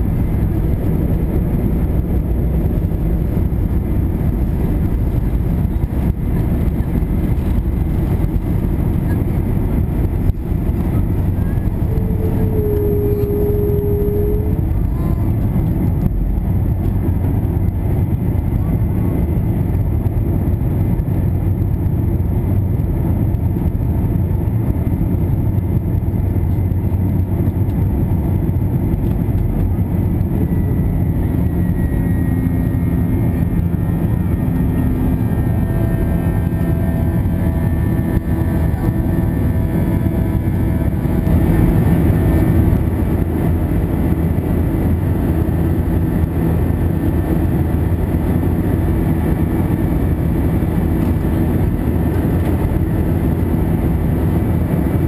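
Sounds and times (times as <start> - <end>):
jet engine roar in cabin: 0.0 - 55.0.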